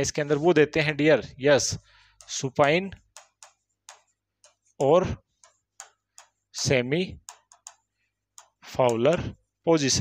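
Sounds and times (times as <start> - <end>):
stylus ticking on touchscreen: 2.1 - 9.2.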